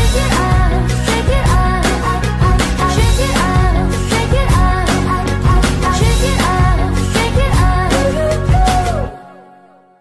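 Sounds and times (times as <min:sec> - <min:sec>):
pop song with steady beat: 0:00.0 - 0:10.0.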